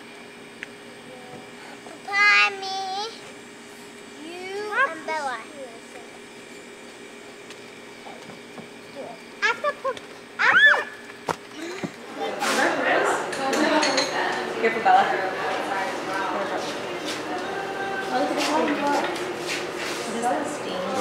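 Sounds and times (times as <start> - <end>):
children calling: 9.4 - 12.6
child shouting: 10.4 - 11.0
murmuring voices: 11.6 - 21.0.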